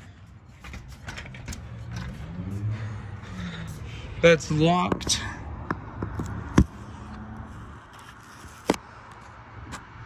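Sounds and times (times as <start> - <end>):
car engine revving: 1.6 - 3.7.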